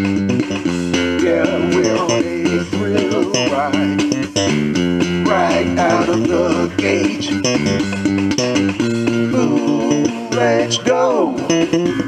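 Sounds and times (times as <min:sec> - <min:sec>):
drum beat: 0:00.0 - 0:12.0
electric bass guitar: 0:00.0 - 0:12.0
wavering lead melody: 0:00.0 - 0:12.0.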